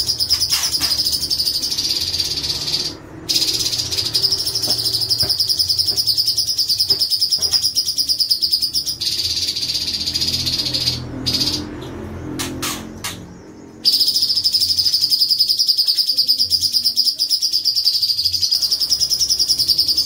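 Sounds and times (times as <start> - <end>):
bird singing fast trill: 0.0 - 11.8, 12.4 - 20.0.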